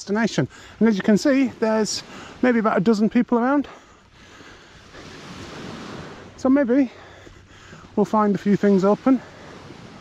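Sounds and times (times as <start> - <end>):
surf washing on sand: 0.0 - 10.0
wind: 0.0 - 10.0.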